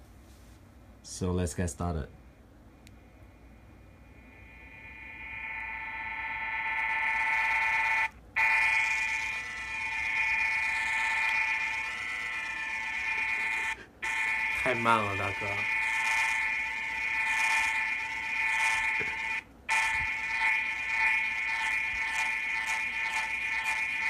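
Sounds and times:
electronic tone from small speaker: 4.1 - 24.0.

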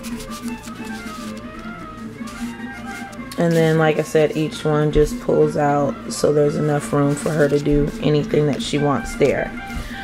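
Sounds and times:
paper cards rustling and sliding: 0.0 - 4.5, 6.7 - 8.6
soft background music: 0.0 - 10.0.

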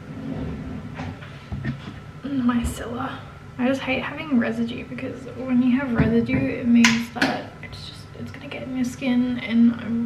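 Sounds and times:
handling noise low rumble: 0.0 - 7.4.

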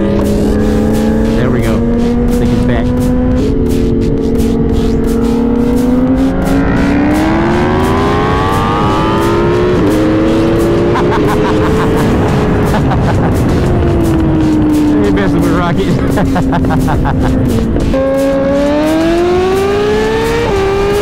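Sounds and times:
motorcycle engine accelerating: 0.0 - 21.0
wind rush: 0.0 - 21.0.

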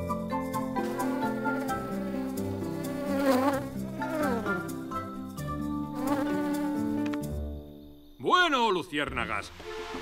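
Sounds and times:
cartoon insect wings buzzing: 0.8 - 4.9.

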